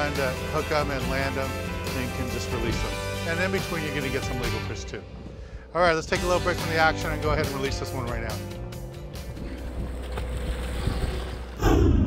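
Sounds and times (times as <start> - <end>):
wind: 4.8 - 12.0
boat engine rumble: 4.9 - 12.0
water noise: 9.2 - 12.0.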